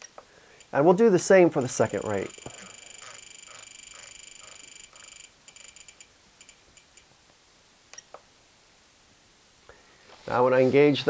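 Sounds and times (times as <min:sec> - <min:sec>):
high electronic beeps: 0:01.6 - 0:06.0
click: 0:07.9 - 0:08.2.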